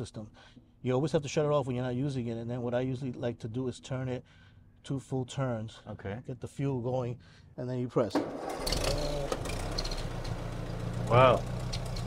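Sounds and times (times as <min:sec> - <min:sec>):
tractor engine starting and idling: 0:08.1 - 0:12.0.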